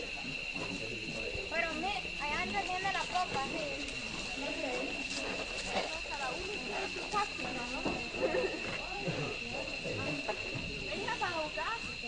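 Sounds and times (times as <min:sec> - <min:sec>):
girls calling and chattering: 0:00.0 - 0:12.0.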